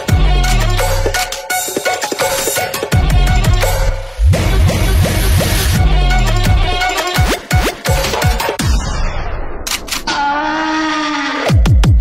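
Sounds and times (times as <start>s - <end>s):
noisy whoosh: 3.9s - 5.9s.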